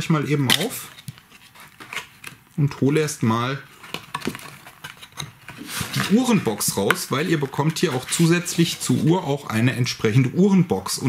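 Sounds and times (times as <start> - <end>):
box sliding out of sleeve: 5.5 - 6.5.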